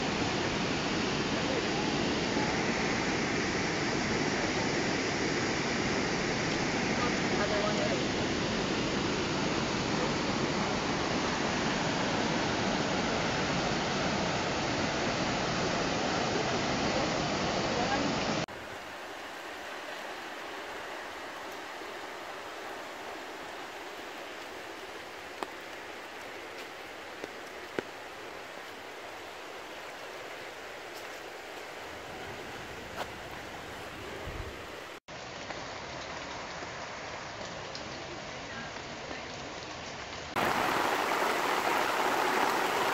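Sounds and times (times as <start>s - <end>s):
whitewater rushing between boulders: 0.0s - 35.0s, 40.4s - 42.9s
fast-flowing creek water: 5.4s - 35.0s, 40.4s - 42.9s.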